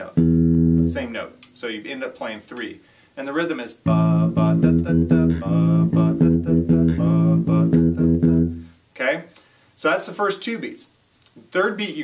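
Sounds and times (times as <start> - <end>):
electric bass plucked notes: 0.0 - 1.4, 3.8 - 8.7.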